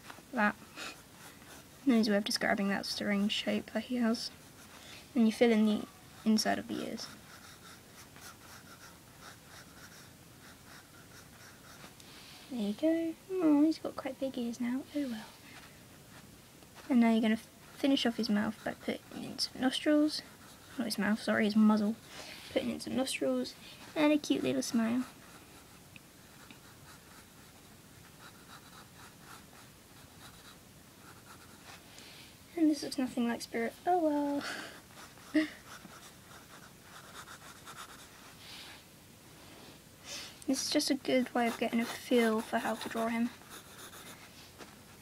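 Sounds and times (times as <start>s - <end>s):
pencil scratching on paper: 0.7s - 3.0s, 4.0s - 12.0s, 16.8s - 21.9s, 23.8s - 31.8s, 34.8s - 38.4s, 40.7s - 44.3s.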